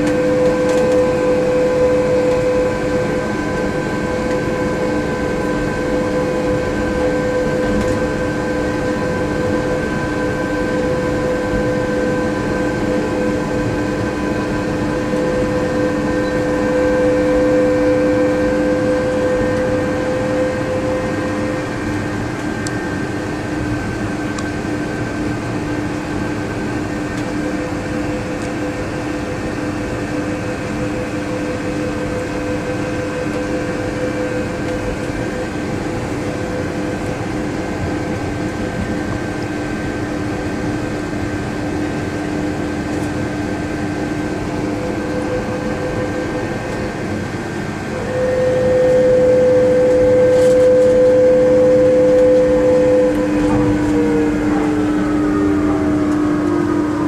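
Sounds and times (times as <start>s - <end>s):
monorail car whine: 0.0s - 57.0s.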